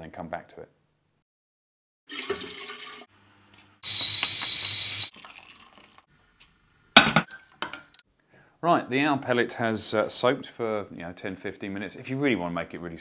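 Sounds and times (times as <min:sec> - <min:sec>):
tap water running into kettle: 0:02.1 - 0:03.1, 0:04.0 - 0:06.0
kettle whistling: 0:03.8 - 0:05.2.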